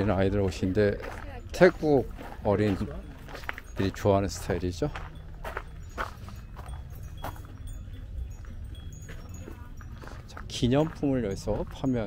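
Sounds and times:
faint high tinkles: 0:00.0 - 0:12.0.

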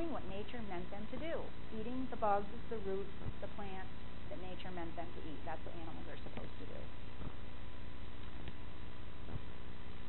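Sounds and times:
background hum and hiss: 0:00.0 - 0:10.0.

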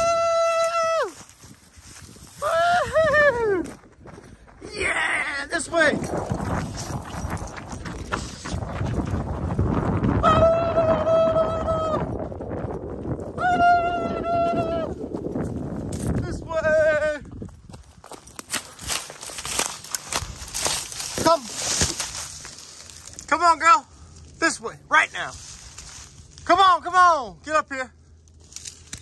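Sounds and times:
rustling of dry grass and brush: 0:00.0 - 0:10.2, 0:15.0 - 0:26.6, 0:28.0 - 0:29.0.

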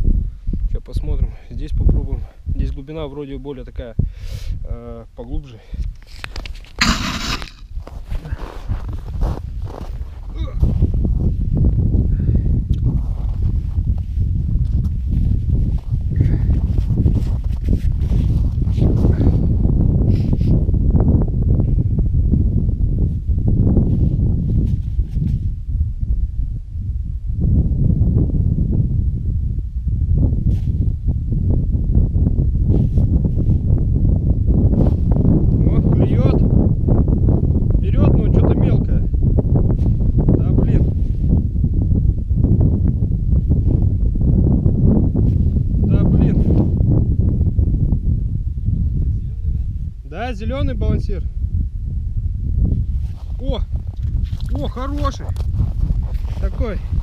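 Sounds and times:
wind buffeting microphone: 0:00.0 - 0:57.0
sharp rustling scrape: 0:06.1 - 0:10.0, 0:52.9 - 0:53.4, 0:55.2 - 0:57.0
rustling of winter clothing: 0:07.4 - 0:11.4, 0:13.0 - 0:19.1, 0:52.8 - 0:57.0.

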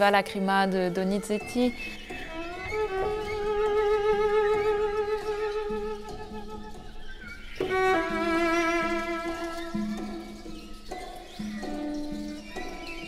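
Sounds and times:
bowed cello notes with vibrato: 0:00.0 - 0:13.0.

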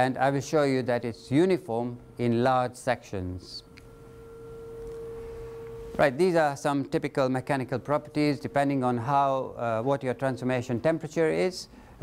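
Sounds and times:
steady electronic tone: 0:00.3 - 0:11.0
fainter higher tone: 0:03.6 - 0:06.2, 0:07.0 - 0:09.9.

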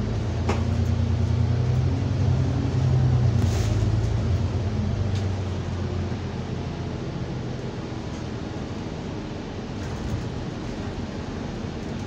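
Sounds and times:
bus engine drone: 0:00.0 - 0:12.0.

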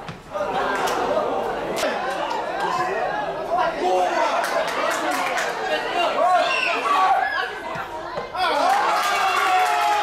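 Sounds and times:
crowd chatter and calling out: 0:00.0 - 0:09.7.

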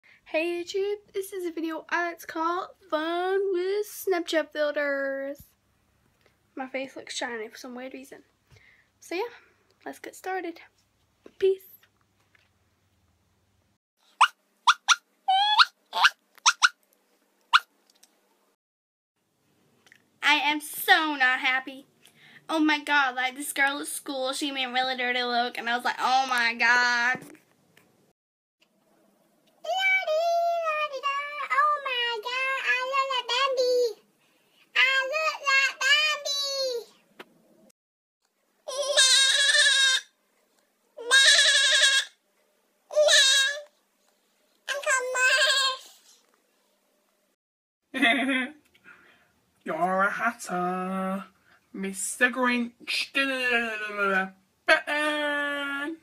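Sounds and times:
girl yipping like a puppy: 0:14.2 - 0:16.7.

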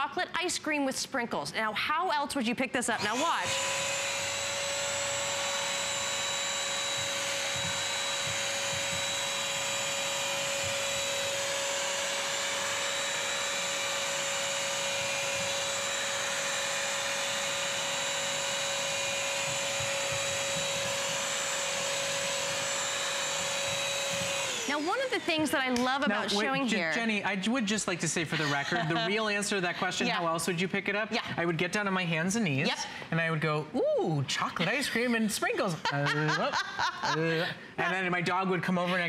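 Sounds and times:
wet vacuum motor whine: 0:03.0 - 0:27.0.

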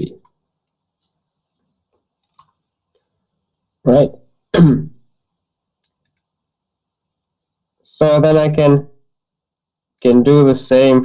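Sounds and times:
man speaking: 0:00.0 - 0:00.2, 0:03.8 - 0:05.0, 0:07.8 - 0:09.0, 0:10.0 - 0:11.0.

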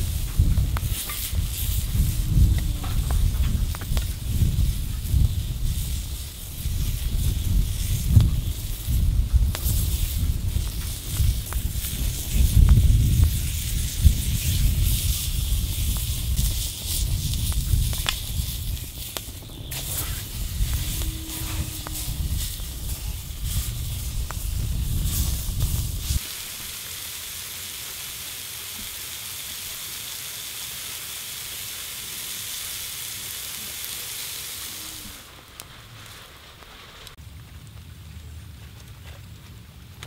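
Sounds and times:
low rumble: 0:00.0 - 0:26.2
meat sizzling on steel plate: 0:00.0 - 0:35.3.

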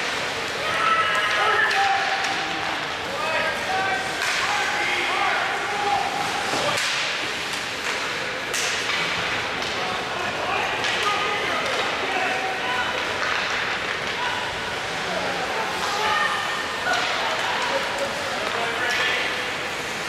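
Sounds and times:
hockey sticks clacking puck: 0:00.0 - 0:15.0, 0:15.6 - 0:20.0.

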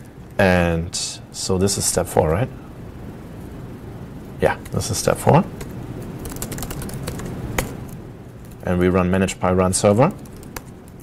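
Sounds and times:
laptop keyboard typing: 0:04.5 - 0:07.9, 0:09.8 - 0:11.0.

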